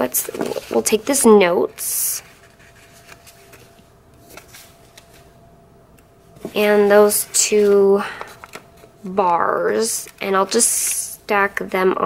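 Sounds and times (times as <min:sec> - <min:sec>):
paper sheets rustling: 0:00.0 - 0:05.4, 0:06.4 - 0:11.0.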